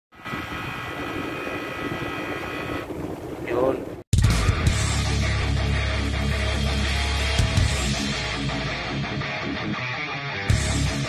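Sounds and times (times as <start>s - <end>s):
high whine: 0.1s - 3.0s.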